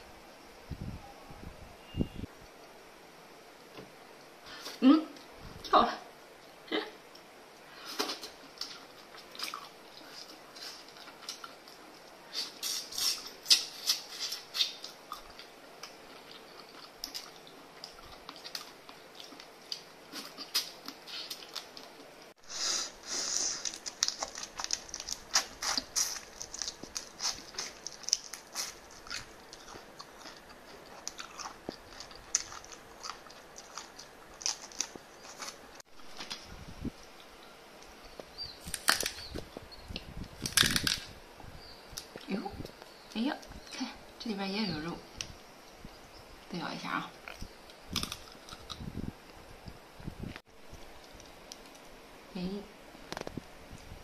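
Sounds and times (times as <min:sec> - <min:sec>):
sucking and chewing: 0:07.1 - 0:41.1, 0:47.2 - 0:49.4, 0:50.7 - 0:52.0
shells cracking and peeling: 0:23.6 - 0:35.6, 0:38.6 - 0:39.4, 0:40.4 - 0:41.1, 0:47.7 - 0:48.8.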